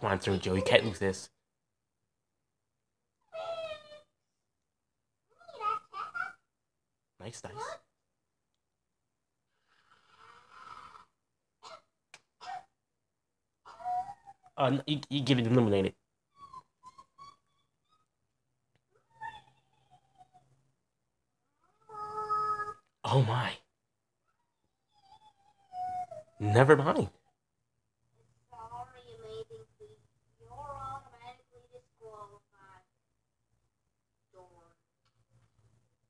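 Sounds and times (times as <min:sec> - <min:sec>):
high-pitched vocal cry: 0:03.2 - 0:04.1, 0:05.3 - 0:06.5, 0:16.3 - 0:18.1, 0:18.9 - 0:20.6, 0:21.6 - 0:22.9.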